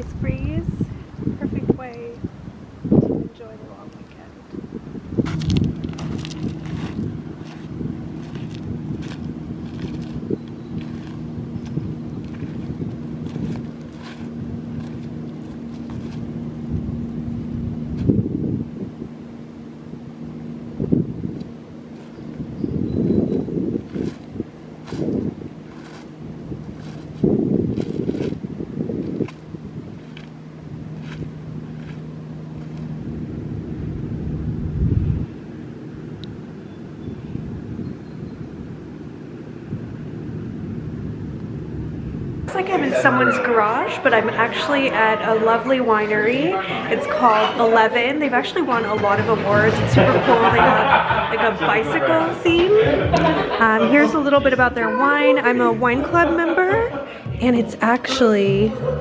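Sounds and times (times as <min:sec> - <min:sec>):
low motor hum: 0:00.0 - 0:59.0
wind buffeting microphone: 0:00.0 - 0:59.0.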